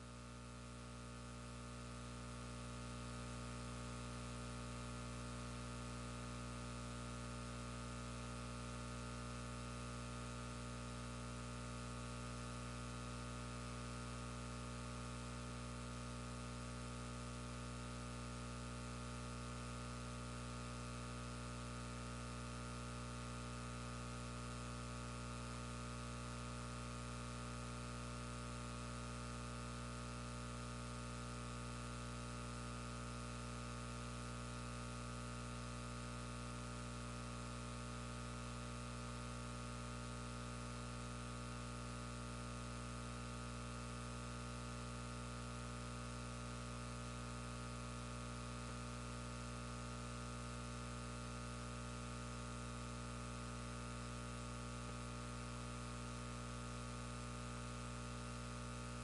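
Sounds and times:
electrical mains hum and buzz: 0.0 - 59.0.

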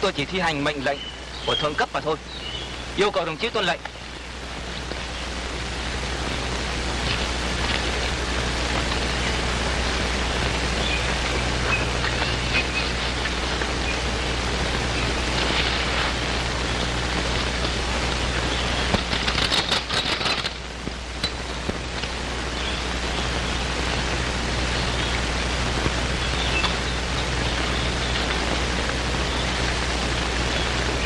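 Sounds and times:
crackles: 0.0 - 31.0
film soundtrack hiss and hum: 0.0 - 31.0.

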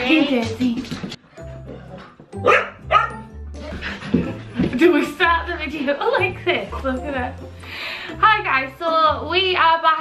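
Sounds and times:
dog barking: 2.4 - 3.3.

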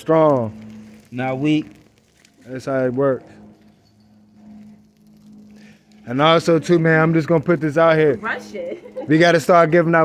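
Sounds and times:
burgers sizzling on a grill: 0.0 - 10.0
steady low hum: 0.0 - 10.0.

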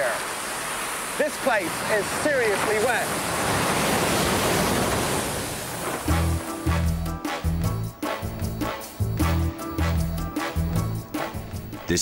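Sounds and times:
heavy rain hissing: 0.0 - 12.0
music with bass line and beat: 6.1 - 12.0.

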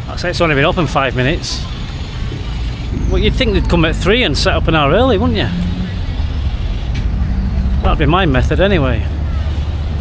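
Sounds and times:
steady low rumble: 2.6 - 9.4.

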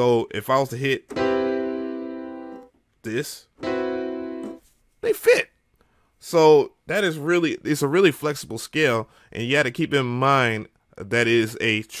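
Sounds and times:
piano chord: 1.1 - 2.7, 3.6 - 4.6.

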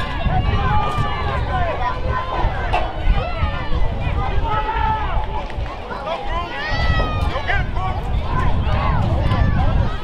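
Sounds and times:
voices shouting and calling out: 0.0 - 10.0
wind rumble on microphone: 0.0 - 10.0.

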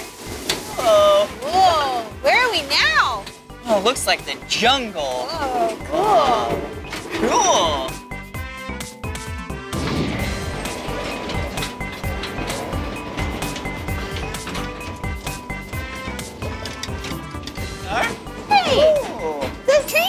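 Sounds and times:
background music with steady beat: 0.0 - 20.0
miniature train rolling on track: 10.2 - 20.0.

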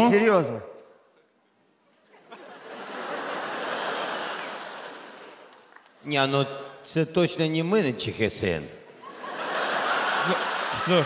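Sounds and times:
studio audience laughing: 2.0 - 5.6, 9.0 - 11.0
audience applauding: 3.2 - 6.0, 9.3 - 11.0.

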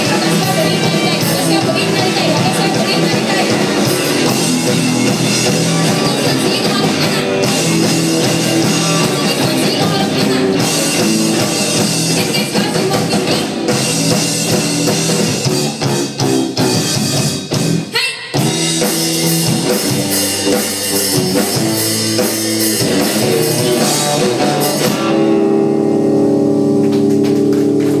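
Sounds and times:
drum kit: 0.0 - 28.0
electric guitars: 0.0 - 28.0.

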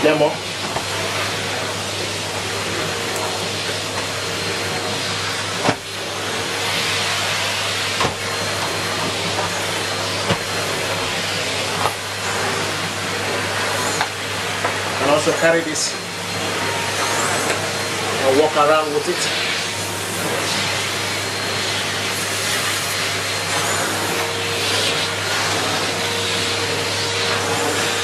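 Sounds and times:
vacuum cleaner running: 0.0 - 28.0
floor tool pushed over carpet: 0.4 - 28.0.

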